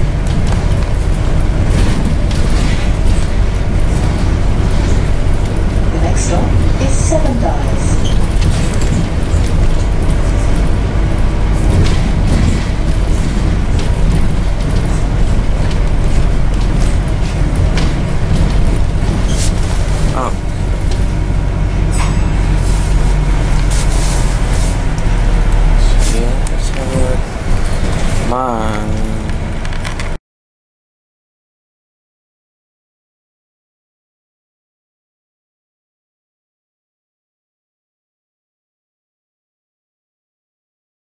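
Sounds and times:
bus engine rumble: 0.0s - 30.2s
road noise: 0.0s - 30.2s.

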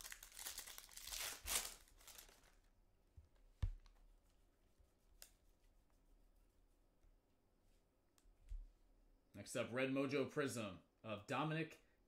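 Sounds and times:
foil wrapper tearing and crinkling: 0.0s - 2.7s.

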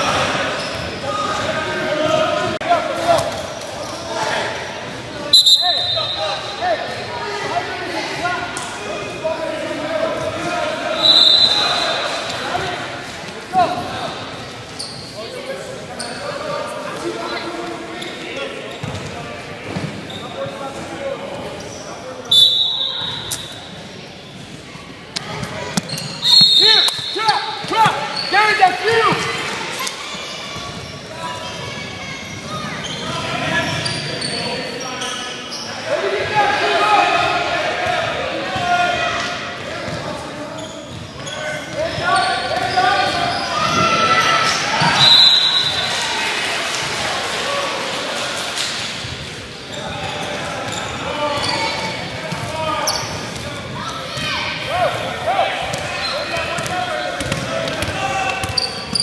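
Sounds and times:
voices and chatter: 0.0s - 59.0s
referee whistle blasts: 5.3s - 6.4s, 11.0s - 12.0s, 22.2s - 23.5s, 26.2s - 27.2s, 44.9s - 45.9s.

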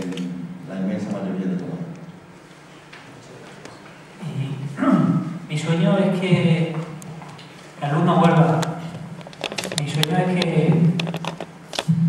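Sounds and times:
man's drawn-out vocal sound: 4.2s - 5.5s.

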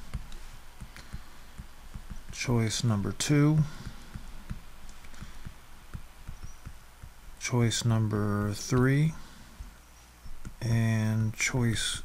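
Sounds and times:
stylus knocking on tablet: 0.0s - 7.4s.

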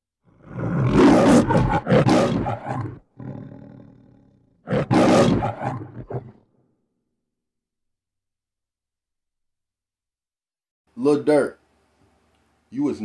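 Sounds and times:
loud monster roars: 0.3s - 6.4s.

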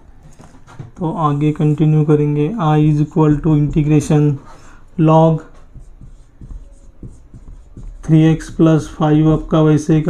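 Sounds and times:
marker pen writing on whiteboard: 0.3s - 10.0s.

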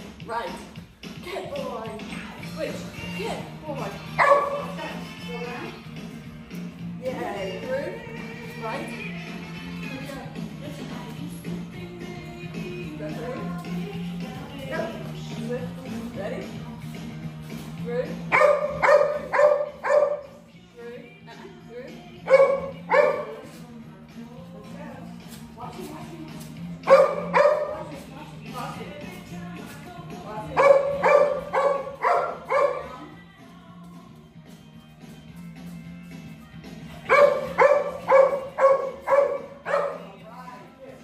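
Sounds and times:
small dog barking: 4.2s - 4.7s, 18.3s - 20.3s, 22.3s - 23.4s, 26.8s - 27.8s, 30.6s - 32.9s, 37.1s - 40.1s.

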